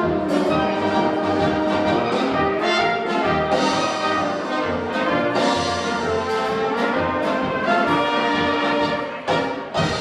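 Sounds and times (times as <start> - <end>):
brass band playing: 0.0 - 10.0
trumpets playing melody: 0.0 - 10.0
tuba bass notes: 0.0 - 10.0.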